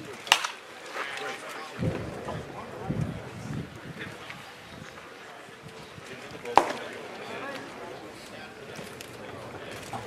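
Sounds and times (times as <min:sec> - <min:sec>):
indistinct voices and chatter: 0:00.0 - 0:10.0.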